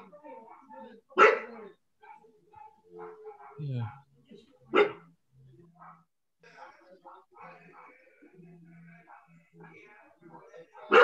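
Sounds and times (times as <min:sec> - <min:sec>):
dog barking: 0:00.5 - 0:04.1, 0:04.7 - 0:05.1, 0:05.7 - 0:08.0, 0:08.9 - 0:09.8, 0:10.4 - 0:11.0.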